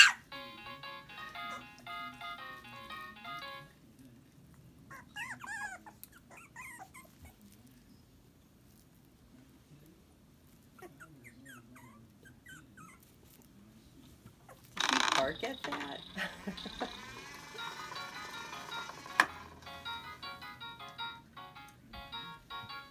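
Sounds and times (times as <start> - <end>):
puppies whimpering and squeaking: 4.9 - 7.5, 10.8 - 13.2.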